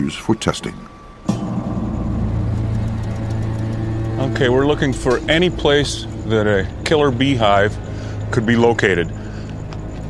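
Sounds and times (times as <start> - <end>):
electrical generator humming: 0.9 - 10.0.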